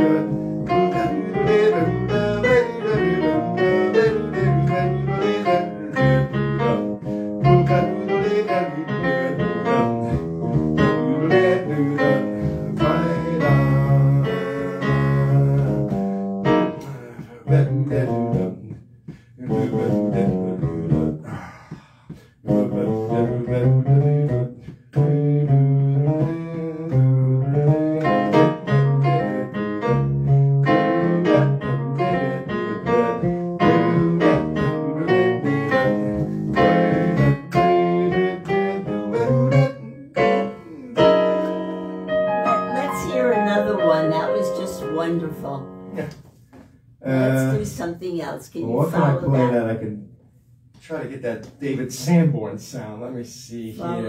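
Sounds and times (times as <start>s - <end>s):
electronic keyboard melody: 0.0s - 16.9s, 24.0s - 46.1s.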